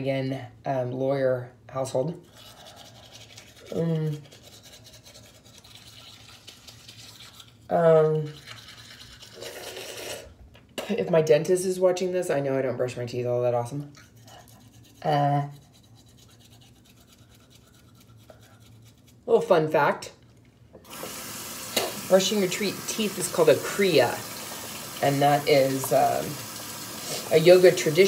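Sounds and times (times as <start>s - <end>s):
toothbrush scrubbing teeth: 2.2s - 10.3s, 13.8s - 19.3s, 20.9s - 28.0s.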